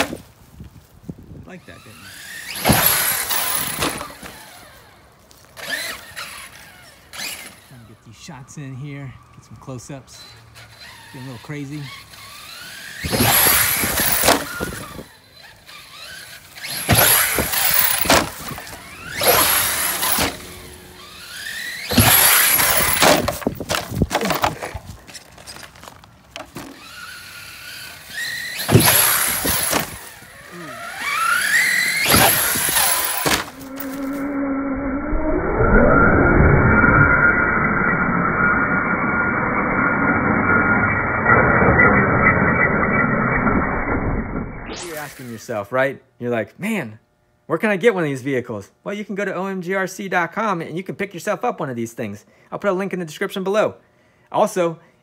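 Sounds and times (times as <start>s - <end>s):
tyre noise: 0.0s - 7.8s, 10.1s - 34.4s
electric motor whine: 1.7s - 8.0s, 10.0s - 45.4s.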